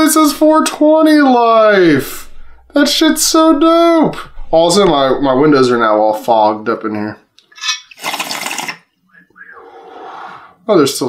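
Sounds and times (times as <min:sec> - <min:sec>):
bong air rush and bubbling: 0:01.7 - 0:06.4
breathy exhale: 0:02.1 - 0:02.7.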